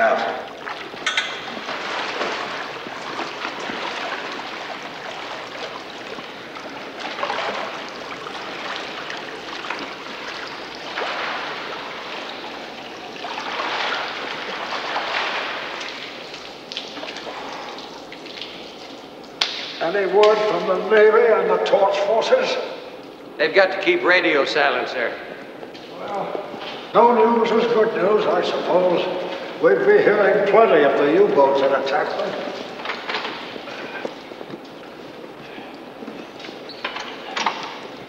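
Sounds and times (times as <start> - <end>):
pool water splashing: 0.0 - 38.0.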